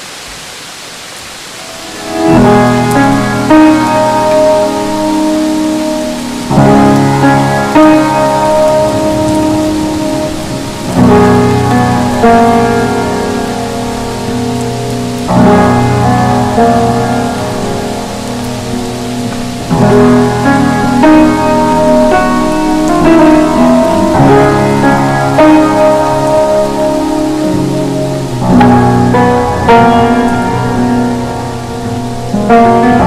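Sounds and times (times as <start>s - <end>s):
steady rain hiss: 0.0s - 33.0s.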